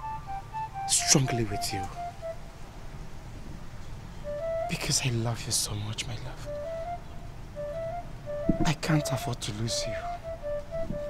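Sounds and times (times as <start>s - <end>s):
soft background music: 0.0s - 3.1s, 4.2s - 11.0s
low steady background rumble: 0.0s - 11.0s.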